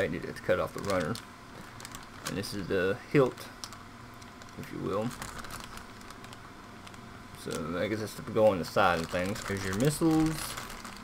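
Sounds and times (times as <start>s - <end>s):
plastic bag crinkling: 0.6s - 11.0s.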